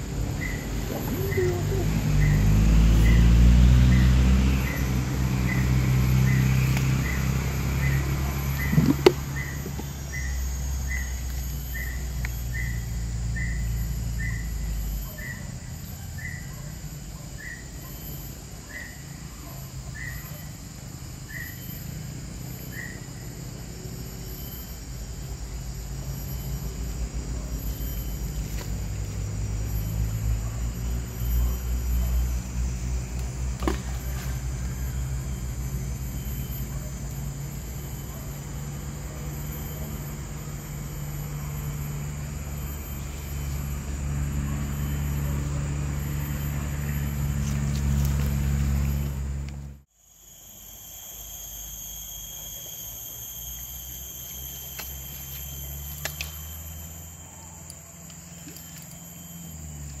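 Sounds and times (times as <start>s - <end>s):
high insect buzz: 0.0s - 60.0s.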